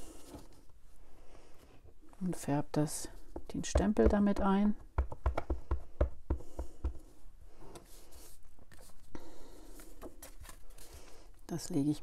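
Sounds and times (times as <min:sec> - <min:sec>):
rubber stamp tapping ink pad: 0:03.4 - 0:07.0.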